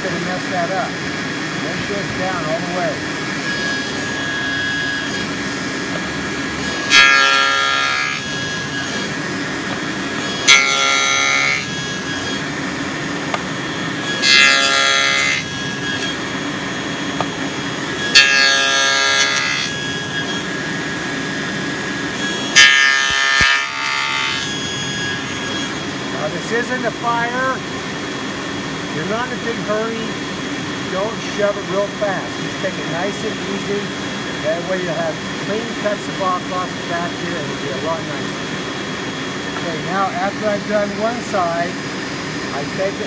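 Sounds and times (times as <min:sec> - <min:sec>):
table saw running: 0:00.0 - 0:43.0
saw cutting wood: 0:01.6 - 0:27.7, 0:28.9 - 0:38.3, 0:39.4 - 0:43.0.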